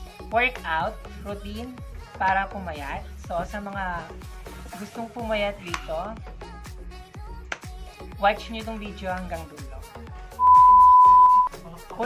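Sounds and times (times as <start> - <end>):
background music with beat: 0.0 - 12.0
loud electronic beep: 10.4 - 11.5.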